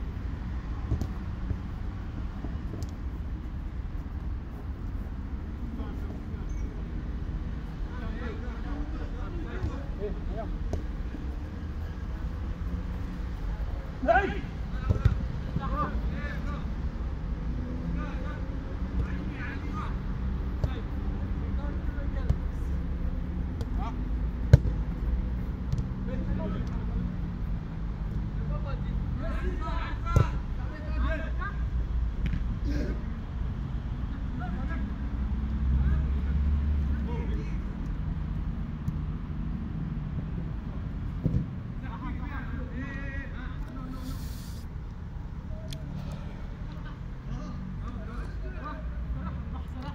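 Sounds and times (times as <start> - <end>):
ball kicked thuds: 0.8 - 1.3, 14.8 - 15.3, 24.4 - 24.8, 41.2 - 41.6
players shouting: 13.7 - 16.7.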